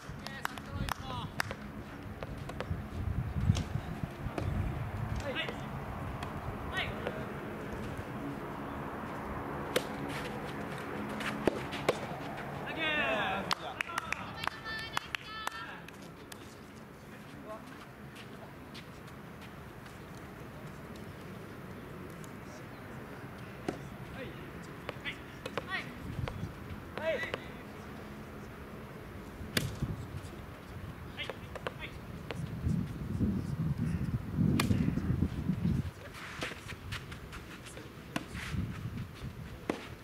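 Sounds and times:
voices: 0.0 - 38.4
rackets hitting rubber ball: 0.1 - 2.8, 3.5 - 8.1, 9.6 - 12.8, 24.8 - 27.6, 29.5 - 29.9, 34.5 - 35.0.

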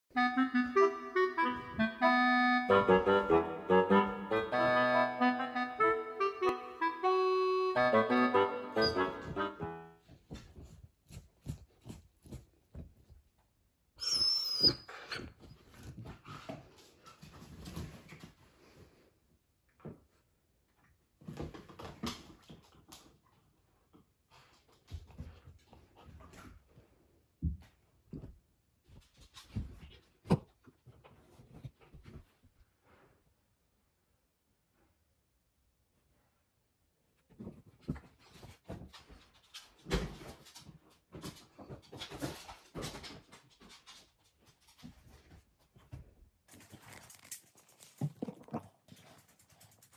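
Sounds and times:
squeaky toy squeaking: 7.9 - 9.5.

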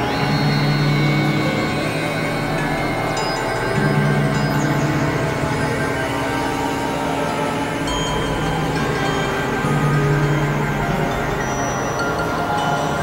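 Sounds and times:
low drone: 0.0 - 13.0
sustained synthesizer tones: 0.0 - 13.0.

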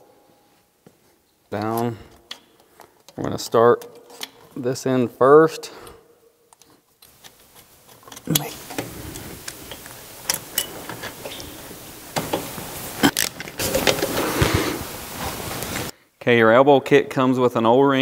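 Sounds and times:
metal bolts clicking and tapping: 1.5 - 4.6, 5.8 - 11.6
rustling: 7.1 - 15.9.

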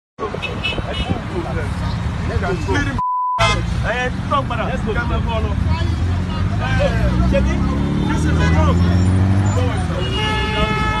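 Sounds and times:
men talking over one another: 0.2 - 11.0
road traffic: 0.2 - 11.0.

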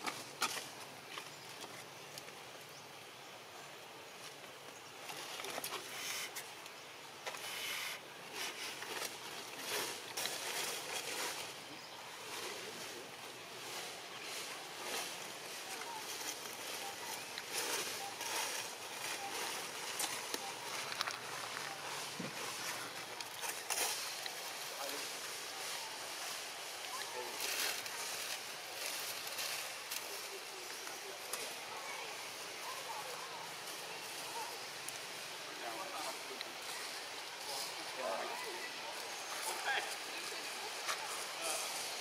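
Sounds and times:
outdoor ambience: 0.0 - 42.0
steady hiss: 0.0 - 42.0
soft rustles: 4.2 - 42.0.

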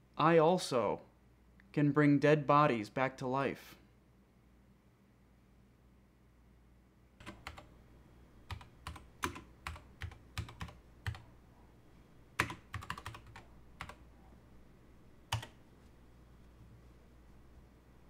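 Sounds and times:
typing on computer keyboard: 7.2 - 7.7, 8.5 - 11.2, 12.4 - 14.0, 15.3 - 15.6.

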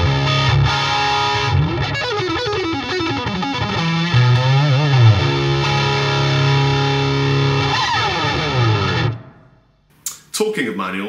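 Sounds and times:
distorted electric guitar: 0.0 - 9.6.

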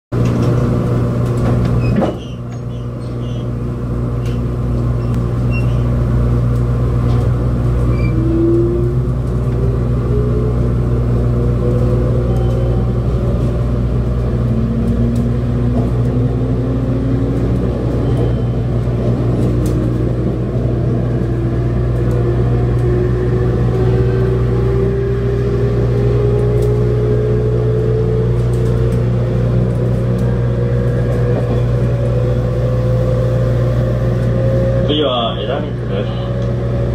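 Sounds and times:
train interior low hum: 0.1 - 36.9.

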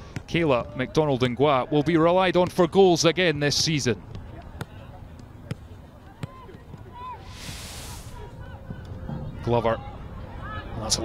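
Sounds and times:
distant shouts: 6.0 - 11.0
burst of hiss: 7.2 - 8.3.

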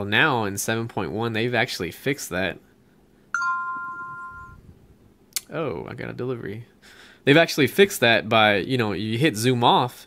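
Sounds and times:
two-tone notification chime: 3.4 - 4.6.

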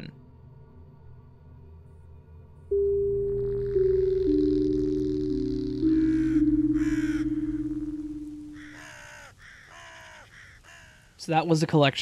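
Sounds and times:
ambient music notes: 1.0 - 8.8
crow cawing: 5.9 - 7.6, 8.4 - 11.2.

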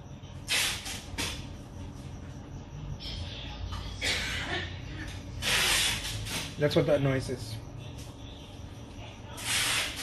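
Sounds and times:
packing tape ripping off roll: 0.5 - 1.4, 5.4 - 6.5, 9.4 - 10.0.

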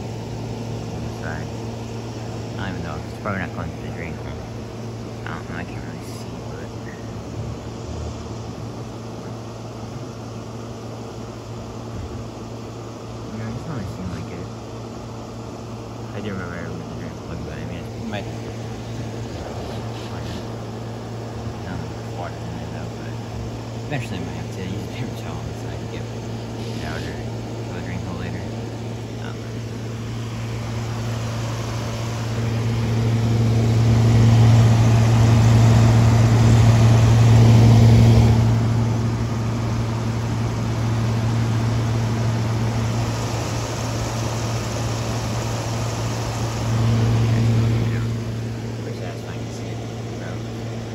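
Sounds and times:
air conditioner humming: 0.0 - 50.9
rush of airflow: 25.0 - 27.7, 28.4 - 50.9.

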